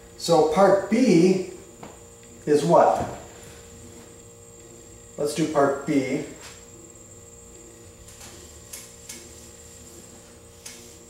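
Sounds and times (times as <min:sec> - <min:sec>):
steady electrical hum: 0:00.0 - 0:11.0
eraser wiping a whiteboard: 0:08.1 - 0:11.0.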